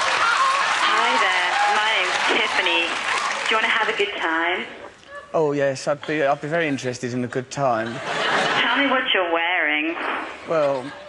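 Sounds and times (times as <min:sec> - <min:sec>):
audience applauding and laughing: 0:00.0 - 0:03.6, 0:07.8 - 0:09.0.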